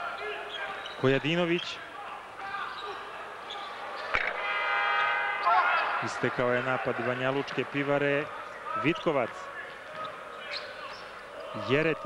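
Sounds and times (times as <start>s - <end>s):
crowd noise: 0.0s - 12.0s.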